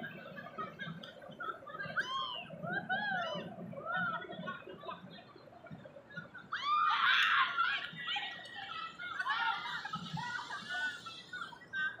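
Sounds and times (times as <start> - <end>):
children shrieking and laughing: 0.0 - 12.0.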